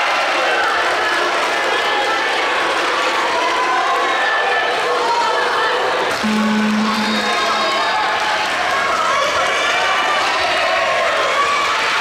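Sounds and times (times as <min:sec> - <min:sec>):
crowd chatter and shouting: 0:00.0 - 0:12.0
steady low tone: 0:06.2 - 0:08.3.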